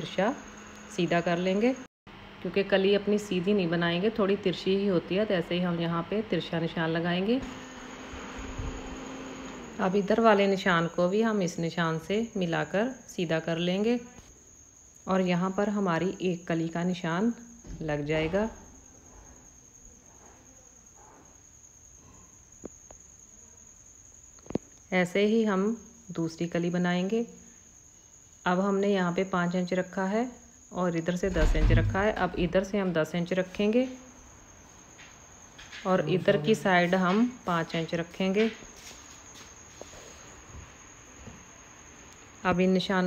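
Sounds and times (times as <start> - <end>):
room hiss: 0.0 - 43.0.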